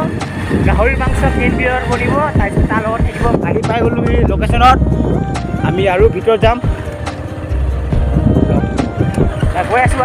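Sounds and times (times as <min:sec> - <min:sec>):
voices talking: 0:00.0 - 0:10.0
wind rumbling on microphone: 0:00.0 - 0:10.0.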